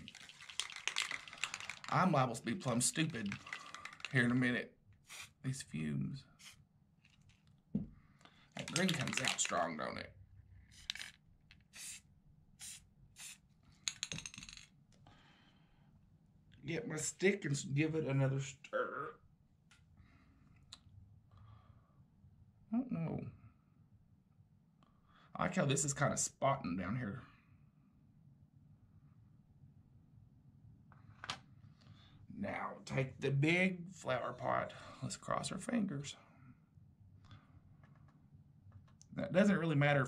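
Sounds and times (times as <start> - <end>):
aerosol spray can hissing: 5.1 - 5.4, 11.7 - 13.4.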